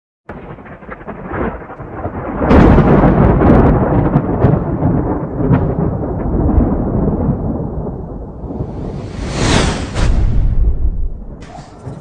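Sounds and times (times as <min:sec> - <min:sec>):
rolling thunder: 0:00.3 - 0:12.0.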